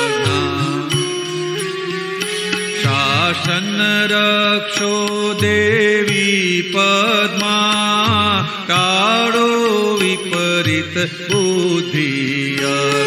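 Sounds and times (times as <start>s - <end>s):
instrumental accompaniment: 0.0s - 13.0s
person singing devotional song: 0.0s - 13.0s.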